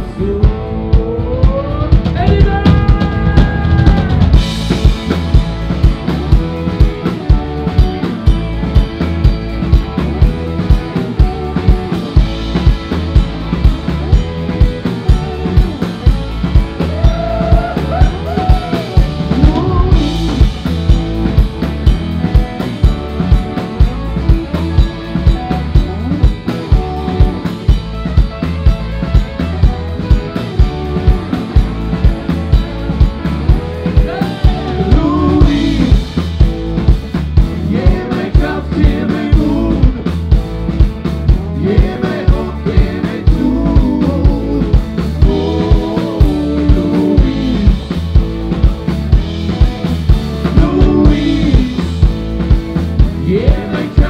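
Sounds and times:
bass drum and snare beat: 0:00.0 - 0:54.0
rock band playing: 0:00.0 - 0:54.0.

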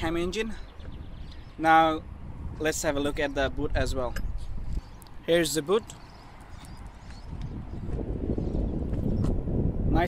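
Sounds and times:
microphone handling rumble: 0:05.8 - 0:10.0.

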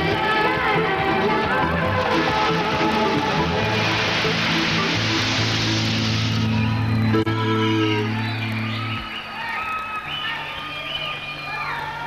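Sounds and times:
crowd cheering with whoops: 0:05.8 - 0:12.0.

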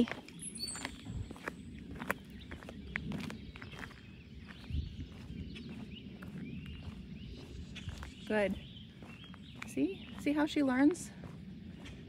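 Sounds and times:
footsteps on asphalt: 0:00.0 - 0:12.0
outdoor background noise: 0:00.0 - 0:12.0.

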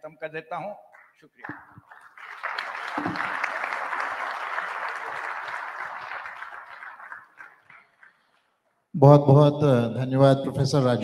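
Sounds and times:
audience applauding: 0:01.4 - 0:08.4.

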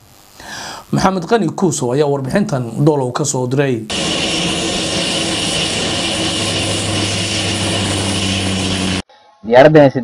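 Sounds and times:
propeller plane engine running: 0:03.9 - 0:09.0.

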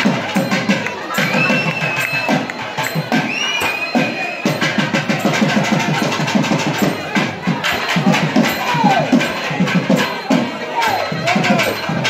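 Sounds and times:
crowd hubbub: 0:00.0 - 0:12.0
drums beating fast: 0:00.0 - 0:12.0.

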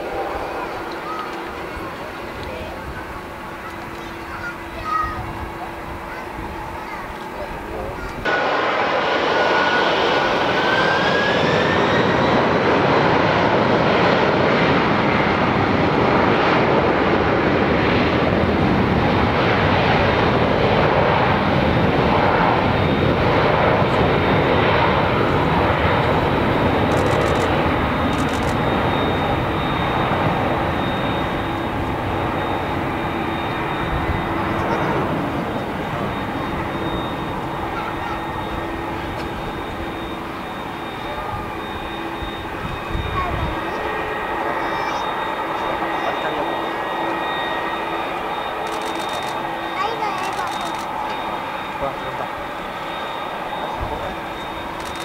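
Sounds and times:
jet engines roaring: 0:00.0 - 0:55.0
turbine whine rising in pitch: 0:08.2 - 0:13.1, 0:23.8 - 0:49.8, 0:50.6 - 0:55.0.

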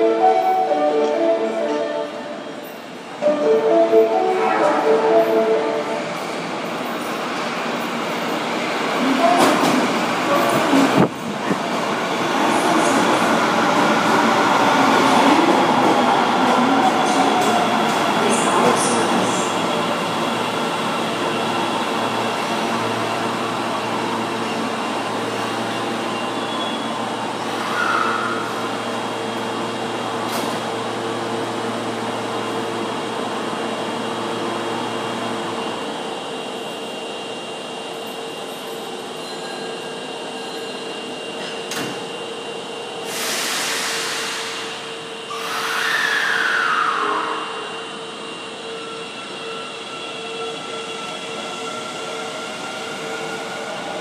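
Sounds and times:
electric train braking: 0:43.0 - 0:53.9
faint high squeals: 0:45.3 - 0:52.3.

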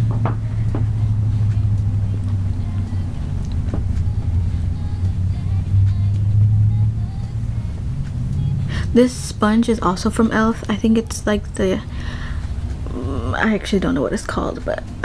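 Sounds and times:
faint music: 0:00.0 - 0:15.0
steady low hum: 0:00.0 - 0:15.0.

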